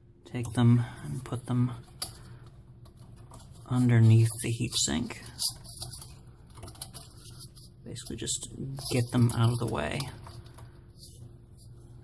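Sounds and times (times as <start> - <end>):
cables clicking and rustling: 0.3 - 11.9.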